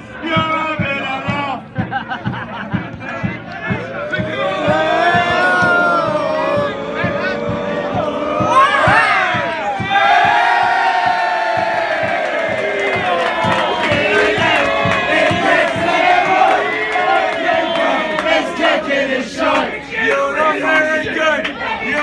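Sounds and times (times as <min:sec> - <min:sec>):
crowd chanting a falling note: 0:02.9 - 0:22.0.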